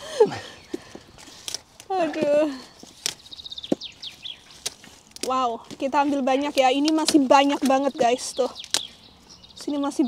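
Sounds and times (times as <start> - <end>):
sprouts snapping off stalk: 0.7 - 9.0.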